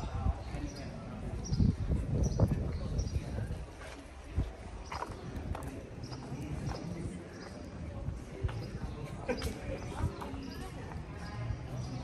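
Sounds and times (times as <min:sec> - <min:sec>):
faint background voices: 0:00.0 - 0:12.0
footsteps on stone paving: 0:03.6 - 0:11.1.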